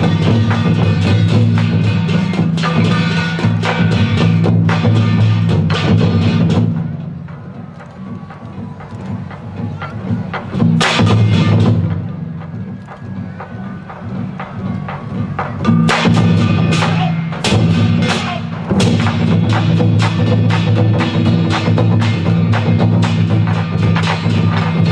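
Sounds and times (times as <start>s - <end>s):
large barrel drums: 0.0s - 24.9s.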